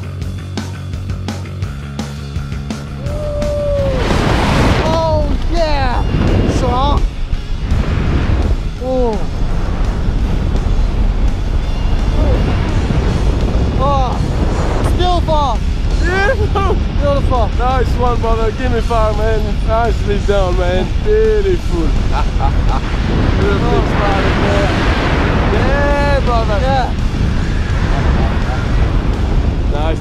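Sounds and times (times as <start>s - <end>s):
rock music: 0.0s - 30.0s
wind roaring over microphone: 2.6s - 30.0s
people shouting and whooping: 3.0s - 4.2s.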